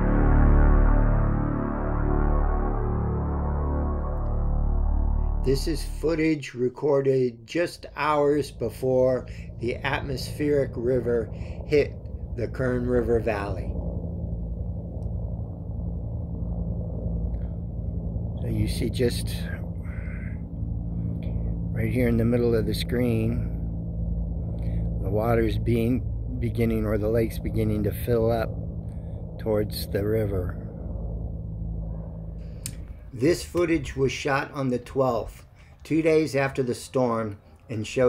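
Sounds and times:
faint low hum: 0:00.0 - 0:38.0
steady low rumble: 0:00.0 - 0:38.0.

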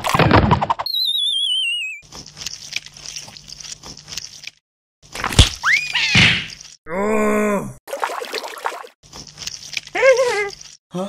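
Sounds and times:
wobbling descending whistle: 0:00.9 - 0:02.0.

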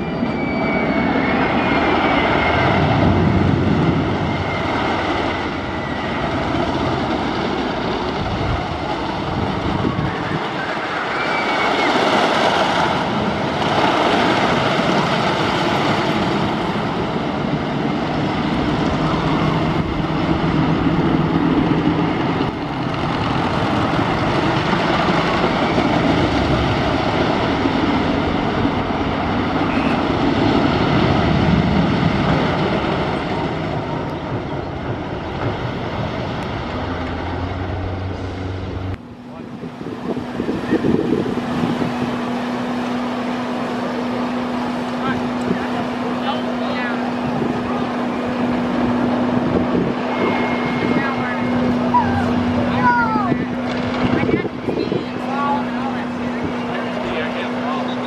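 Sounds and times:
roller coaster rumbling on track: 0:00.0 - 0:58.0.

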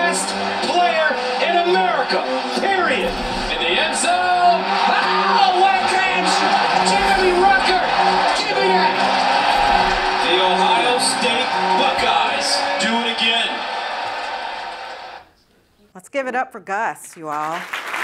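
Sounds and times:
excited sports commentary: 0:00.0 - 0:14.0
music: 0:00.0 - 0:15.2.

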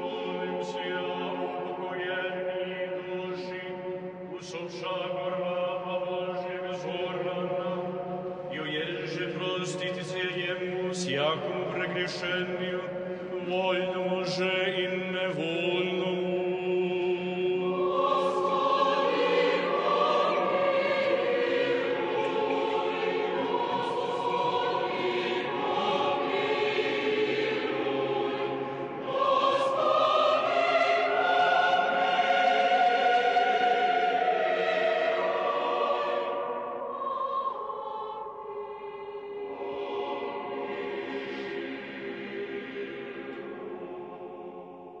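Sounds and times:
choir singing held notes: 0:13.0 - 0:45.0.

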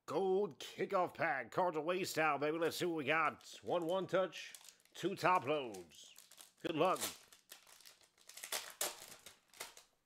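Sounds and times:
foil wrapper crinkling and tearing: 0:03.7 - 0:10.0.

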